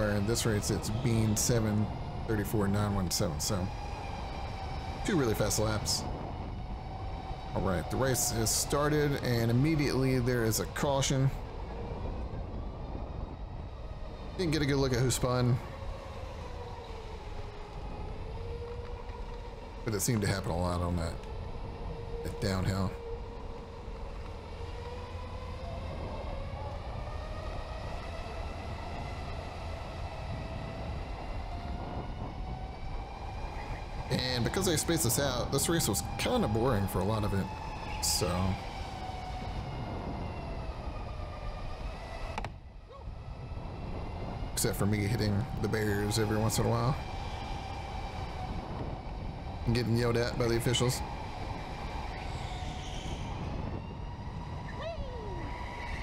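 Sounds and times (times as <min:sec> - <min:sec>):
road and tyre noise: 0:00.0 - 0:56.0.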